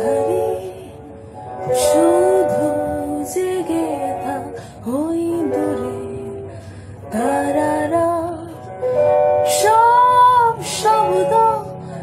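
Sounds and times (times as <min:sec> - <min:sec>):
electric guitar: 0:00.0 - 0:12.0
woman singing: 0:00.0 - 0:12.0.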